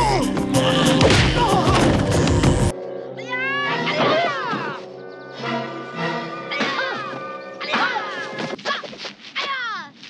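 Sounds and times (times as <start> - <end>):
film score music: 0.0 - 9.2.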